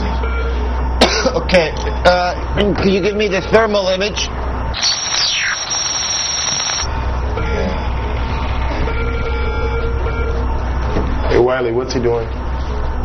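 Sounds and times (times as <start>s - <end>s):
falling whistle-like sweep: 4.8s - 6.8s.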